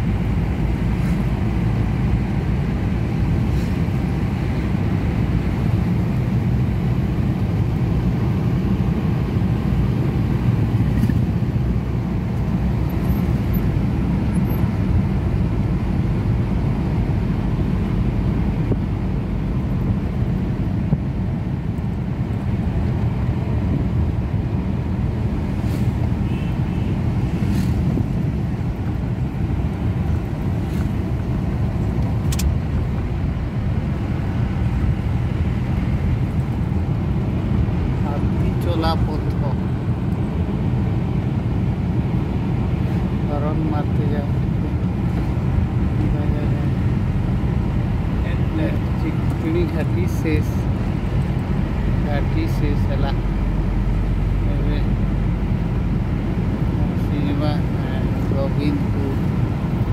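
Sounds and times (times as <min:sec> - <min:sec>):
vehicle engine and tyres rumbling: 0:00.0 - 0:59.9.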